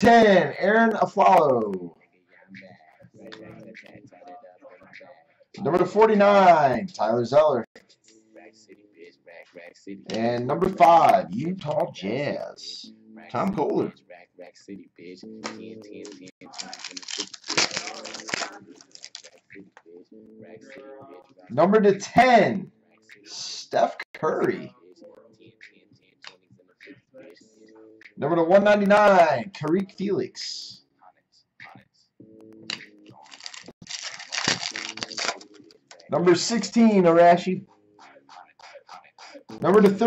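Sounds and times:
faint background music: 0.0 - 40.0
foil wrapper crinkling and tearing: 15.4 - 19.4, 33.2 - 36.0.

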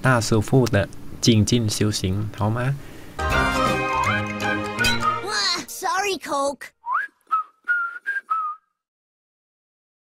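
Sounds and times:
person whistling a tune: 6.8 - 8.9.

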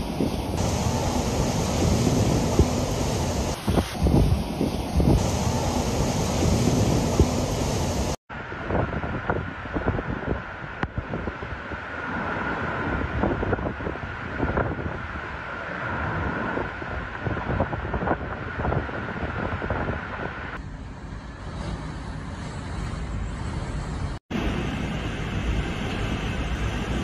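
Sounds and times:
wind buffeting microphone: 0.0 - 20.6.

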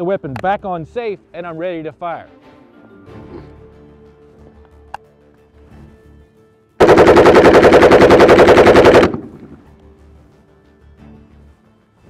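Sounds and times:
automatic rifle burst: 6.8 - 9.6.

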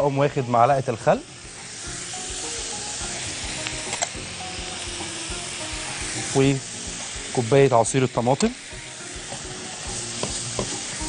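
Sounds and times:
food sizzling in hot oil: 0.0 - 11.0.

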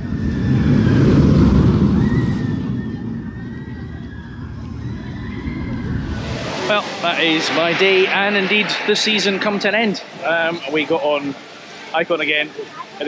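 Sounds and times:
roller coaster rumbling on track: 0.0 - 11.7
faint whine: 0.0 - 13.0.

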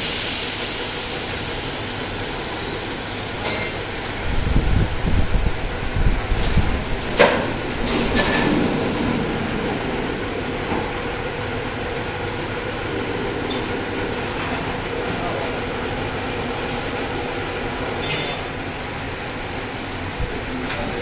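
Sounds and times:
machine running hum: 1.0 - 20.7
machine low rumble: 1.2 - 18.0.

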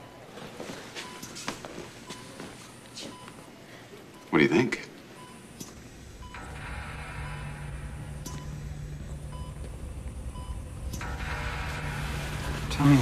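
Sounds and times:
patient monitor beeping: 0.0 - 13.0
low steady drone: 5.2 - 13.0.

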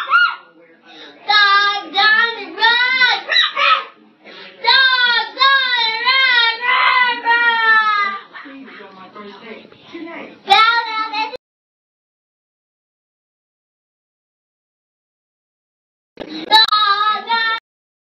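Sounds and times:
child's sing-song cries: 1.3 - 4.0, 4.7 - 8.2, 10.5 - 11.4, 16.5 - 17.6.

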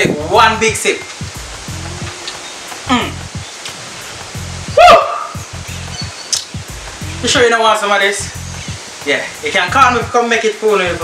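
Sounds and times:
background music: 0.0 - 11.0
steady hiss: 0.0 - 11.0
man humming approvingly: 1.6 - 3.3
vocal exclamation rising in pitch: 1.6 - 3.3, 4.7 - 5.4.

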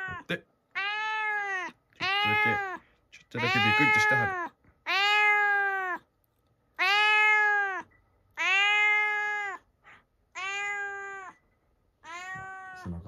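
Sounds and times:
cat meowing: 0.0 - 2.8, 3.4 - 6.1, 6.8 - 9.7, 10.3 - 11.4, 12.0 - 13.0.

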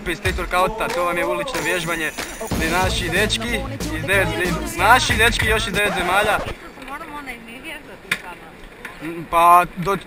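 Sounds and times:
faint voices: 0.0 - 8.9.

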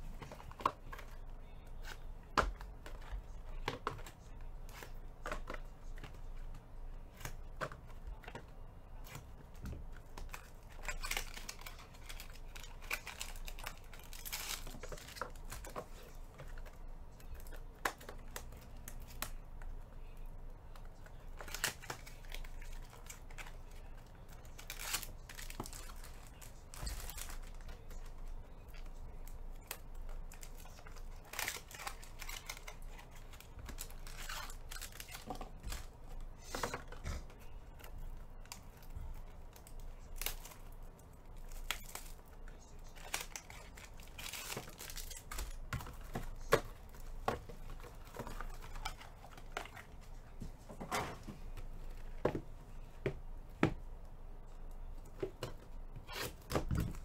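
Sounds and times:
plastic wrapping tearing and crinkling: 9.9 - 19.4, 20.0 - 50.1.

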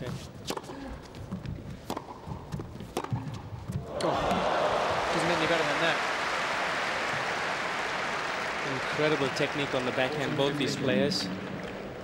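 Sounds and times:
crowd applauding: 3.9 - 12.0.

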